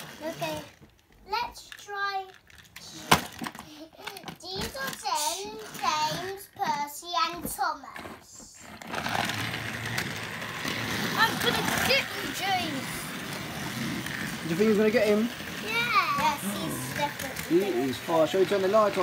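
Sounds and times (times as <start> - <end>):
toy train running on track: 0.0 - 0.8, 1.5 - 7.1, 8.6 - 19.0
children's voices: 0.2 - 3.2, 3.9 - 8.6, 10.6 - 13.8, 15.6 - 18.0.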